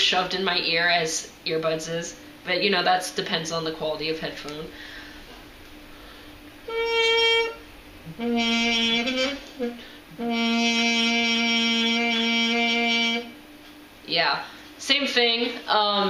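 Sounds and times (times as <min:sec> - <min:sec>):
muted trumpet notes: 0:06.0 - 0:13.4.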